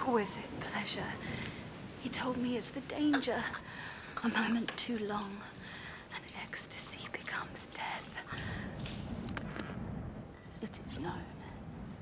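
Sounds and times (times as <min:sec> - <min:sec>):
low rumbling background: 0:04.6 - 0:12.0.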